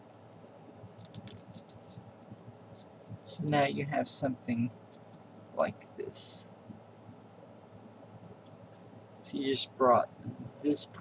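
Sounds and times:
paper crinkling being folded: 0.4 - 3.0.

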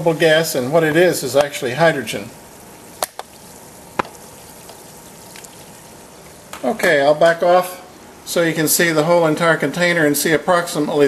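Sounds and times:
faint fizzing of bubbles: 2.4 - 6.4.

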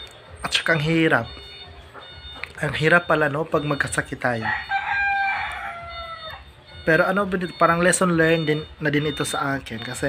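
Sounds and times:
rooster crowing: 4.3 - 6.5.

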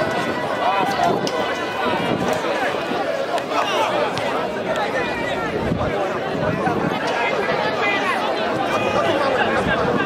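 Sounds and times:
babble of voices calling out: 0.0 - 10.0.

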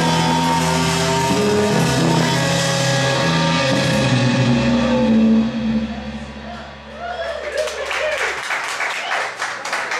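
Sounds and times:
low bass note sustaining: 1.7 - 6.9.

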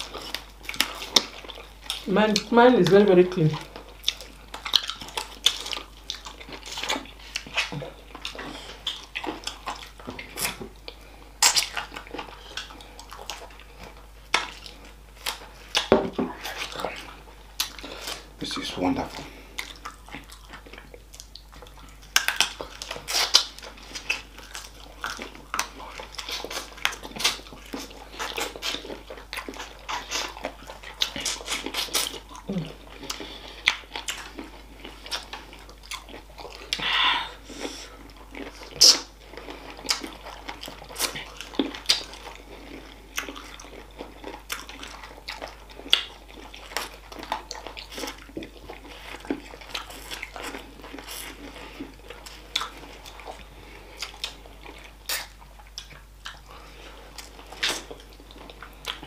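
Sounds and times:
chewing and biting: 0.0 - 59.0.

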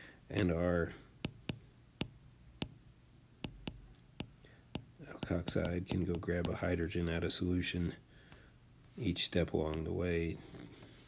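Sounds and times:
stylus tapping on glass screen: 1.2 - 2.8, 3.4 - 6.6.

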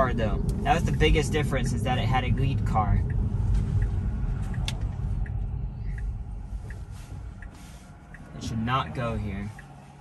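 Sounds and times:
cabin road rumble: 0.0 - 10.0
turn signal ticking: 0.0 - 10.0.

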